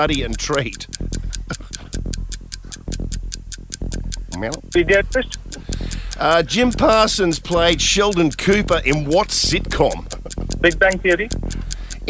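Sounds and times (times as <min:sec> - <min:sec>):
fast clock ticking: 0:00.0 - 0:12.0
low steady hum: 0:00.0 - 0:12.0.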